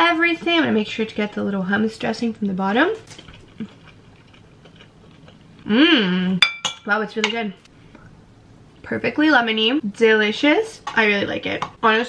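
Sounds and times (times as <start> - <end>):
chewing food: 3.0 - 5.7.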